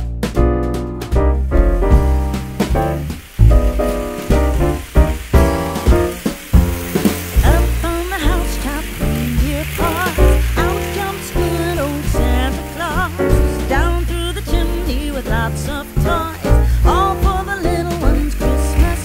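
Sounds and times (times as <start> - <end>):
background music with beat and bass: 0.0 - 19.0.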